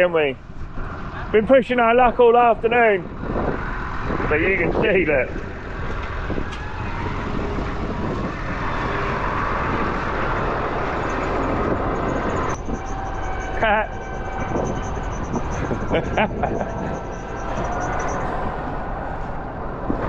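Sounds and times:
tractor engine under load: 0.4s - 20.0s.

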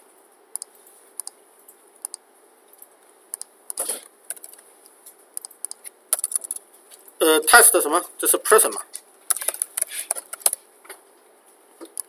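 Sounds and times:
keyboard and mouse clicks: 0.5s - 1.4s, 3.3s - 4.6s, 5.4s - 6.6s, 9.3s - 10.6s.

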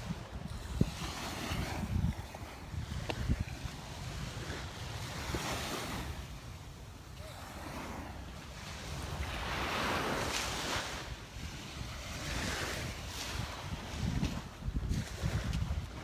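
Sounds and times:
waves washing up sand: 0.0s - 16.0s
wind rumbling on microphone: 0.0s - 16.0s.

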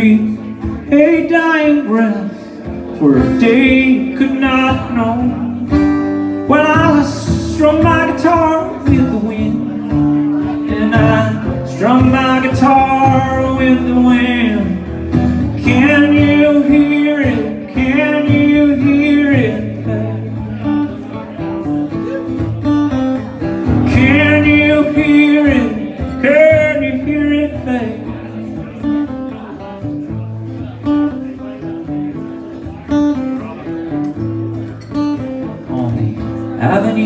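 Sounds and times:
man singing: 0.0s - 34.0s, 34.9s - 37.0s
acoustic guitar strumming: 0.0s - 37.0s.

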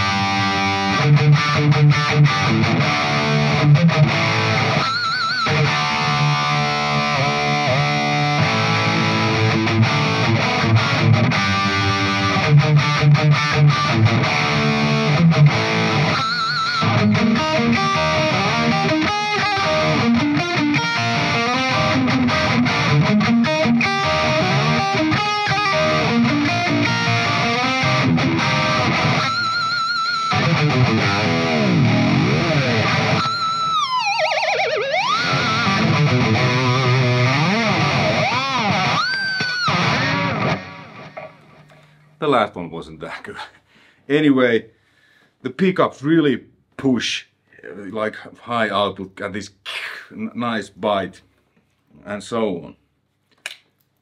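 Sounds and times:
distorted electric guitar lead: 0.0s - 42.0s.

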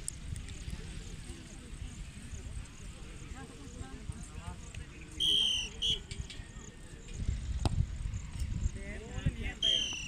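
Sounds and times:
referee's whistle blast: 5.2s - 6.1s, 9.6s - 10.0s.

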